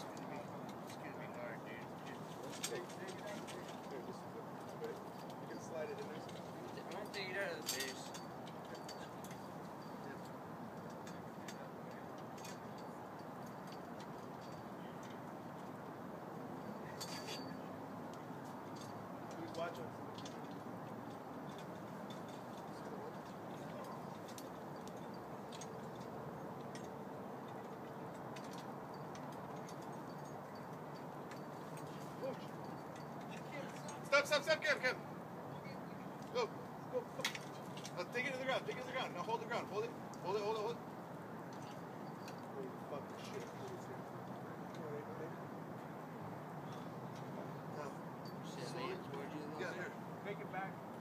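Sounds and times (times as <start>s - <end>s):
faint voices: 0.0s - 13.2s, 19.2s - 40.8s
low background hiss: 0.0s - 51.0s.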